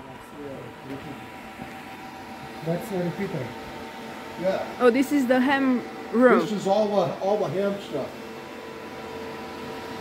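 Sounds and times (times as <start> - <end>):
constant electronic whine: 0.0 - 10.0
cooling fans humming: 0.0 - 10.0.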